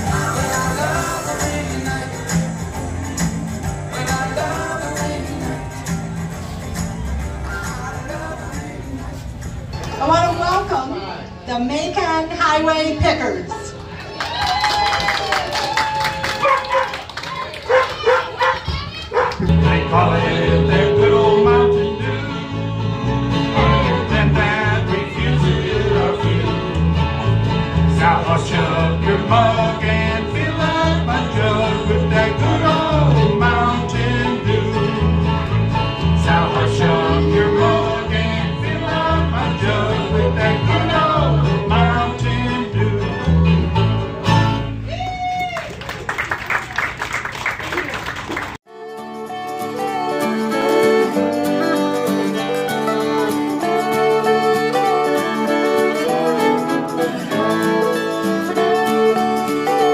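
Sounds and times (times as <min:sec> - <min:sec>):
bluegrass band playing: 0:00.0 - 0:12.1, 0:17.7 - 0:44.9, 0:48.7 - 0:59.9.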